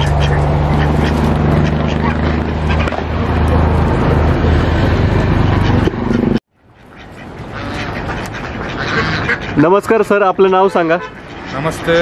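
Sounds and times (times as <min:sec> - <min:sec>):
ducks and geese calling: 0:00.0 - 0:03.7, 0:04.4 - 0:12.0.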